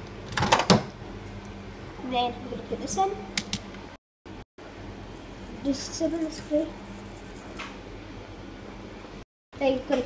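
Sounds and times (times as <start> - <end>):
kitchen appliance humming: 4.6 - 9.2.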